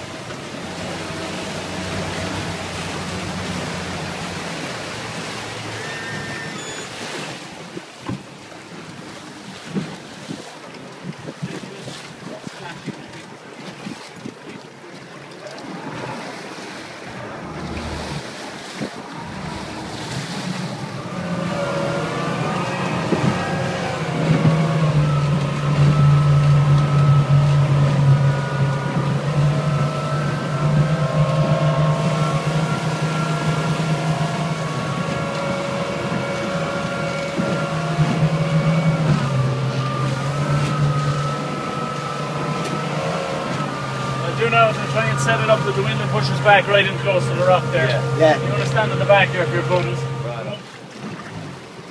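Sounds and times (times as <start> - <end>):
outboard motor running: 0.0 - 51.9
rushing water: 0.0 - 51.9
wind: 0.0 - 51.9.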